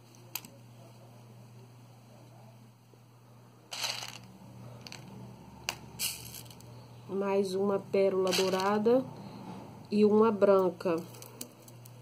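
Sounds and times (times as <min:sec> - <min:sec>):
craft materials rustling: 0:03.7 - 0:05.1.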